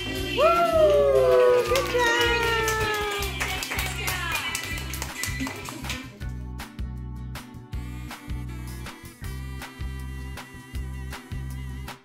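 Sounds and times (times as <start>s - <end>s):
people clapping: 0.0s - 6.3s
background music with steady beat: 0.0s - 12.0s
children cheering: 0.4s - 3.4s.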